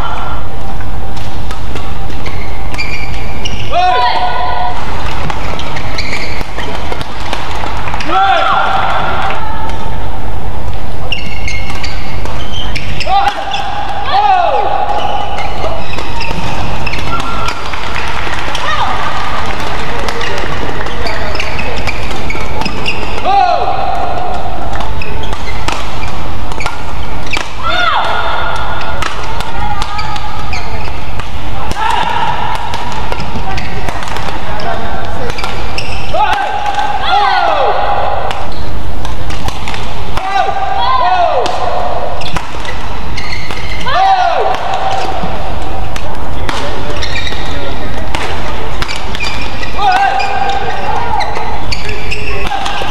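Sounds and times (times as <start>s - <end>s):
rackets hitting shuttlecock: 0.7s - 37.0s, 37.6s - 52.9s
shoes squeaking on court: 1.2s - 8.1s, 10.7s - 13.8s, 14.9s - 23.2s, 24.7s - 27.6s, 28.7s - 31.3s, 32.9s - 36.2s, 38.3s - 39.9s, 42.1s - 43.9s, 45.9s - 52.9s.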